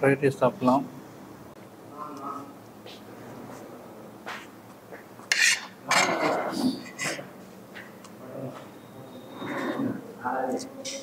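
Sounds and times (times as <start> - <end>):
metal spoon scraping a plate: 5.3 - 7.2.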